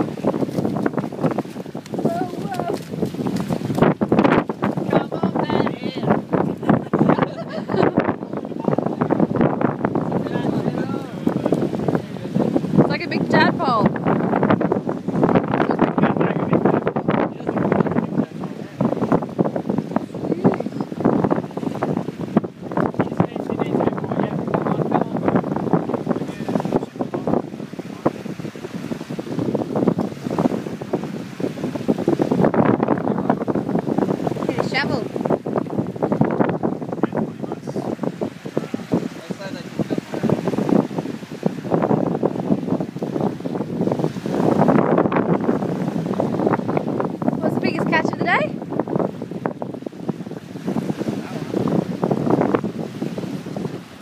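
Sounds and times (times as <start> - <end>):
small waves washing onto sand: 0.0 - 54.0
wind buffeting microphone: 0.0 - 54.0.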